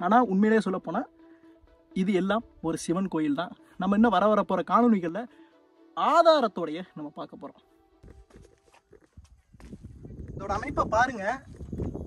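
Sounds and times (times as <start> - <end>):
footsteps on stone: 8.0 - 10.6, 11.4 - 12.0.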